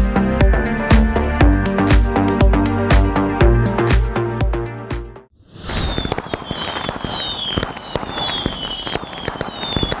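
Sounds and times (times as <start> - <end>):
falling whistles: 5.5 - 10.0
fireworks crackling and popping: 5.5 - 10.0.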